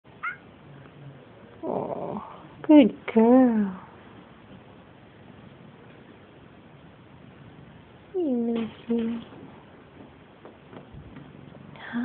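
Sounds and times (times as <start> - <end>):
cat meowing: 0.2 - 0.5.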